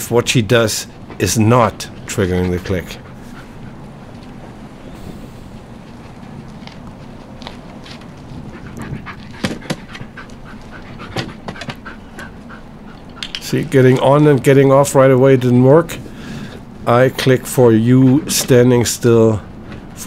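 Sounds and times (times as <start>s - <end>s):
dog panting: 0.8s - 4.5s, 7.9s - 13.4s, 17.4s - 19.6s.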